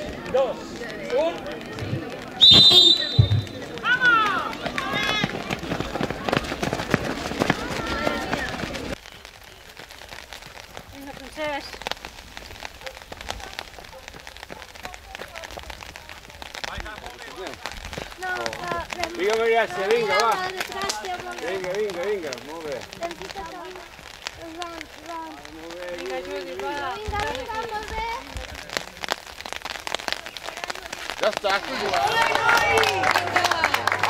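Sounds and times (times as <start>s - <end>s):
spectators cheering and shouting: 0.0s - 9.0s, 31.4s - 34.0s.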